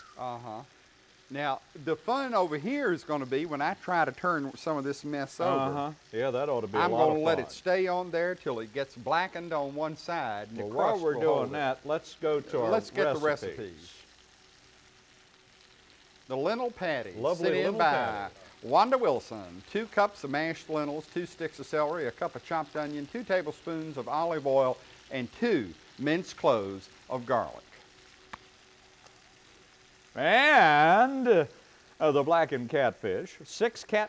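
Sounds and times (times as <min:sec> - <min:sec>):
faint steady hiss: 0:00.0 - 0:34.0.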